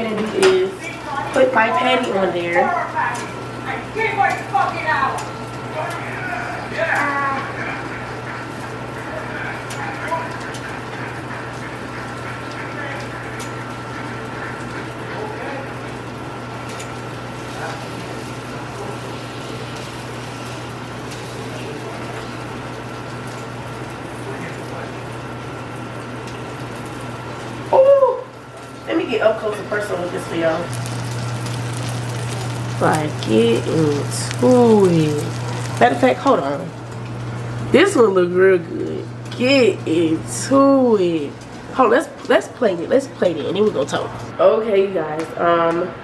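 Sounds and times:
food sizzling in a pan: 0.0 - 44.3.

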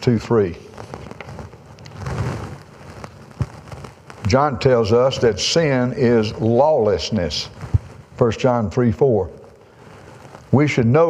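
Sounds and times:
paper rustling: 0.7 - 4.4.

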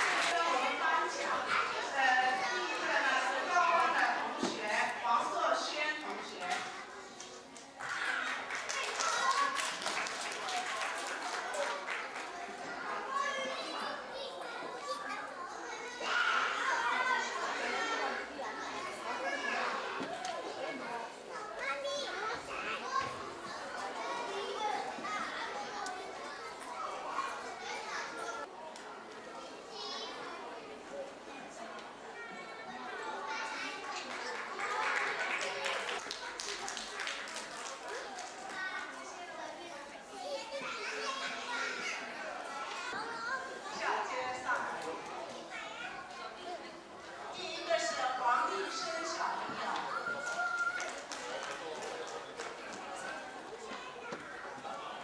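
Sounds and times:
children chattering and calling out: 0.0 - 55.0.

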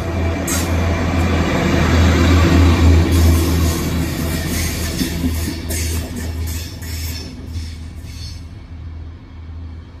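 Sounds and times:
train hissing: 2.8 - 8.8.

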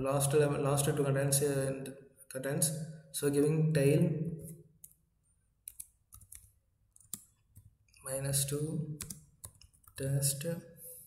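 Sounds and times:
computer keyboard clicks: 5.7 - 7.7, 9.0 - 10.1.

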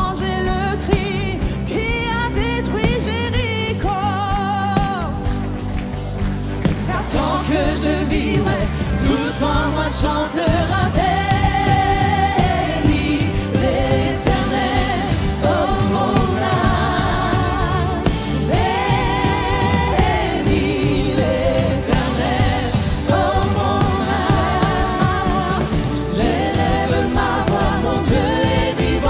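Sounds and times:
worship music band: 0.0 - 29.0
singers holding long notes: 6.8 - 29.0.

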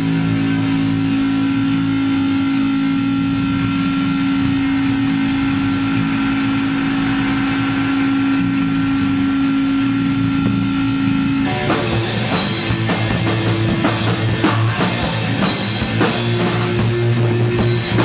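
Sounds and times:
distorted electric guitar drone: 0.0 - 18.0.

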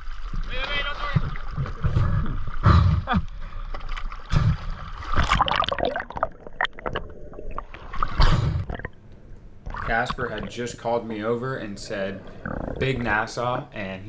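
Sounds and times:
sea water sloshing and splashing: 0.0 - 2.7, 3.3 - 9.0
water gurgling: 0.0 - 13.6.

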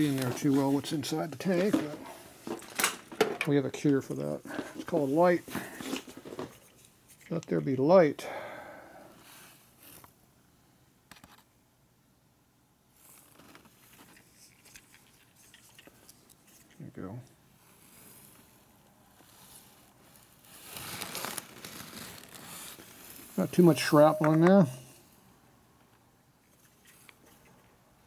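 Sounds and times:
man speaking: 0.0 - 2.0, 3.5 - 5.5, 7.3 - 8.3, 23.4 - 24.8
rustling scrape: 0.0 - 3.2, 17.6 - 25.1
soft rubbing: 17.6 - 25.0.

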